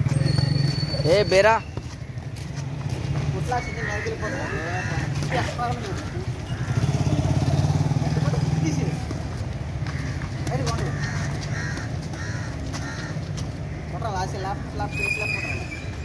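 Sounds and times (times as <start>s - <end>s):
motorcycle engine running: 5.7s - 9.2s.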